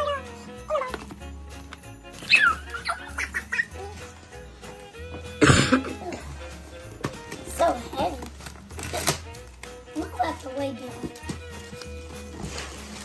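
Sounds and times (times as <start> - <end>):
background music: 0.0 - 13.0
small dog yipping: 2.2 - 3.9.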